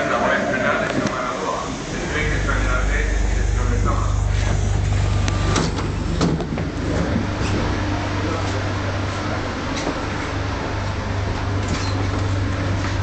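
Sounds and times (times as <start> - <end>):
electric train humming: 0.0 - 13.0.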